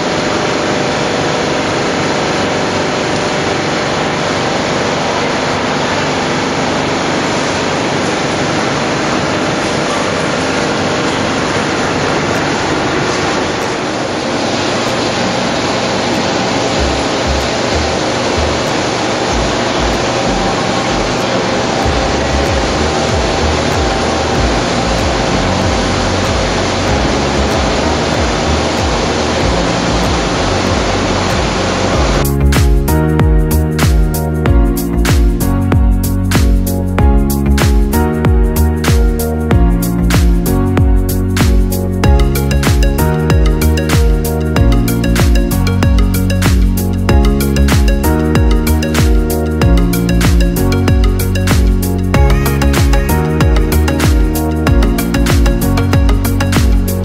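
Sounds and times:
foundry machinery roaring: 0.0s - 35.1s
low uneven thumping: 21.8s - 56.9s.

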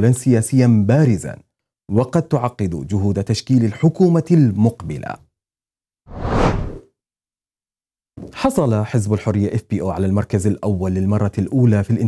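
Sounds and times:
whoosh sound effect: 6.1s - 6.8s.

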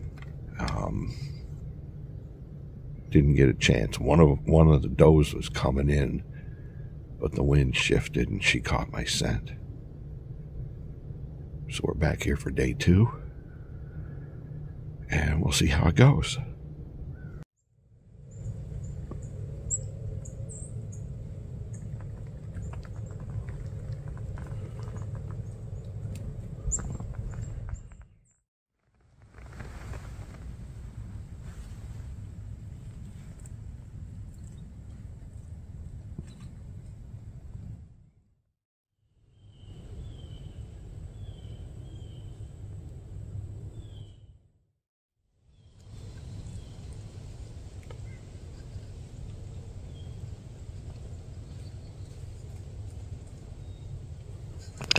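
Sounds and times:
steady low rumble: 0.0s - 28.2s, 28.9s - 38.2s, 39.4s - 44.2s, 45.5s - 54.9s
small birds chirping: 18.2s - 28.4s, 39.3s - 42.6s, 43.7s - 44.3s, 45.5s - 47.1s, 47.8s - 54.0s.

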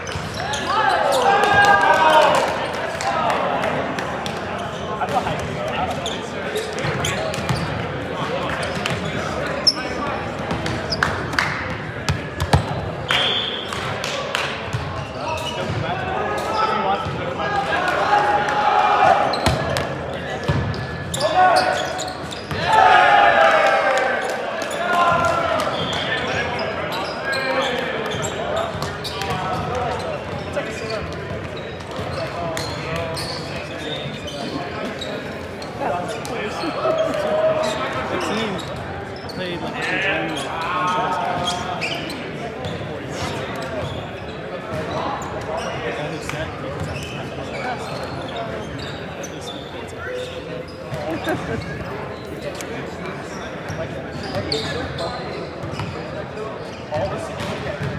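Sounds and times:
indistinct chatter echoing: 0.0s - 57.9s.

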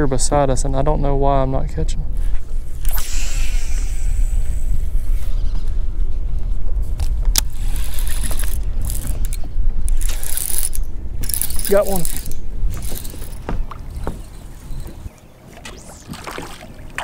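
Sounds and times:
low microphone rumble: 0.0s - 15.1s
fishing line running off reel: 2.6s - 5.5s, 7.4s - 13.4s
reel and rod clicking: 7.0s - 13.4s.

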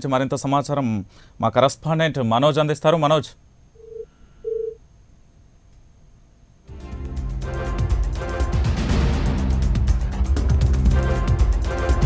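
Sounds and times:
telephone line beep: 3.8s - 4.8s.

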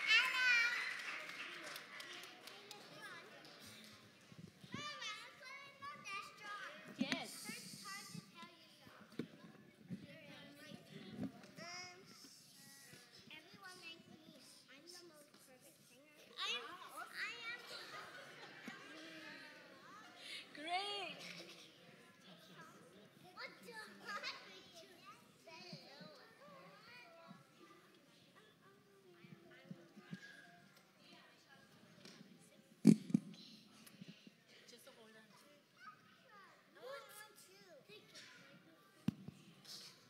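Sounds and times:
young children calling and chattering: 0.0s - 40.0s.

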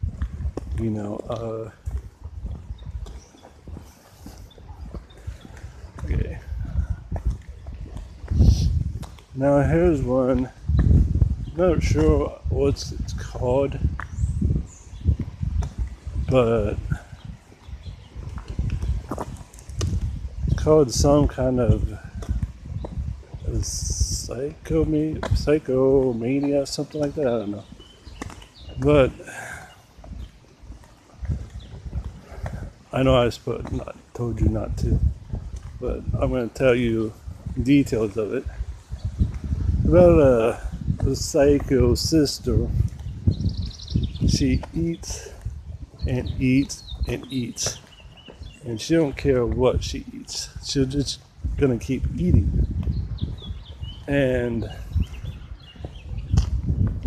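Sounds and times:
footsteps: 0.0s - 12.3s, 13.2s - 23.8s, 24.5s - 43.4s, 44.2s - 49.6s
wind rumble on microphone: 0.0s - 57.0s.

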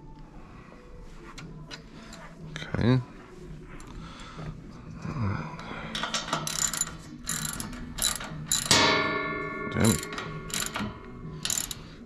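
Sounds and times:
ratchet wrench clicking: 5.9s - 8.9s, 9.8s - 11.9s
metallic ring: 5.9s - 12.0s.

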